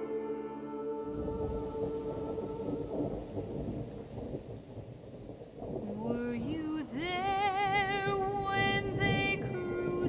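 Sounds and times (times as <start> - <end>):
held musical chord: 0.0 - 3.0
rolling thunder: 1.0 - 10.0.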